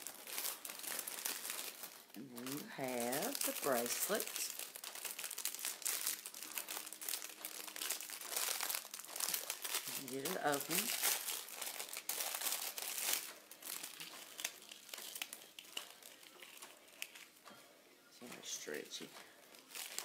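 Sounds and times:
plastic packaging crinkling: 0.0 - 17.5, 18.4 - 20.0.

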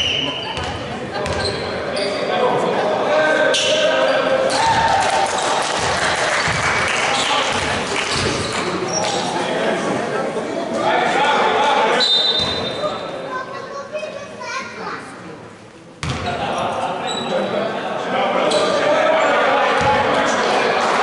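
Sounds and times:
players' voices: 0.0 - 21.0.

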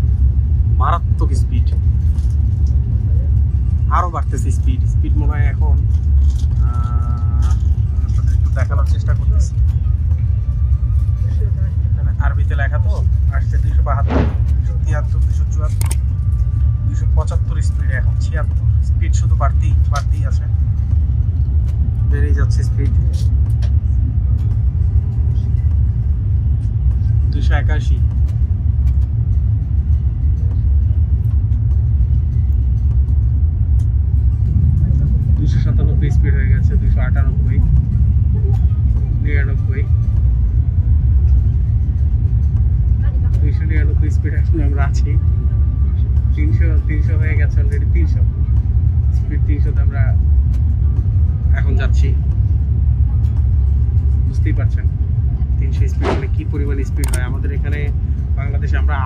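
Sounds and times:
train rumbling at speed: 0.0 - 59.0
voices: 54.2 - 59.0.

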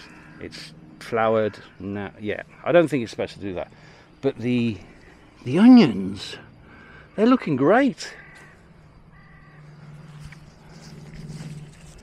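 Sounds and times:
bird calling: 0.0 - 12.0.

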